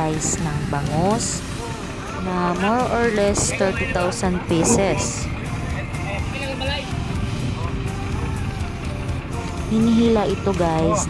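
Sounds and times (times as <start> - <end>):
background music: 0.0 - 11.0
faint voices: 0.0 - 11.0
steady low rumble: 0.0 - 11.0.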